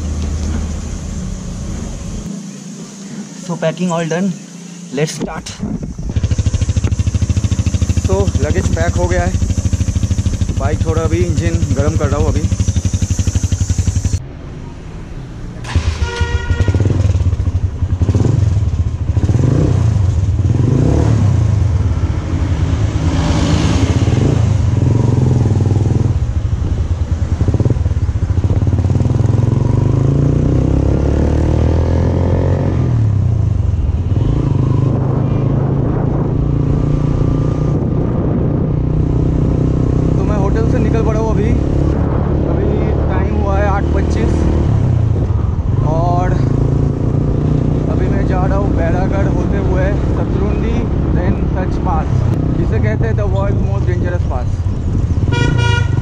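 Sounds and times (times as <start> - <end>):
motorcycle engine accelerating: 0.0 - 14.3, 15.6 - 56.0.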